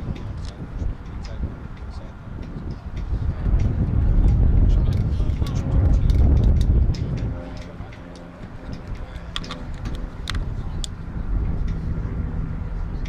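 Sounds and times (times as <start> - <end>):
faint distant voices: 0.0 - 13.0
wind rumbling on microphone: 0.0 - 13.0
sharp clicks: 4.9 - 11.0.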